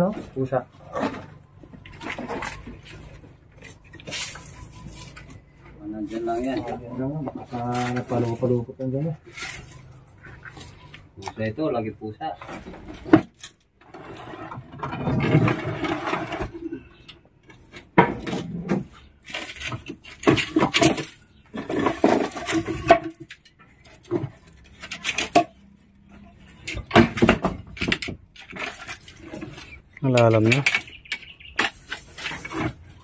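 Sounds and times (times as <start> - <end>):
wood and rubble clattering: 0.0 - 33.0.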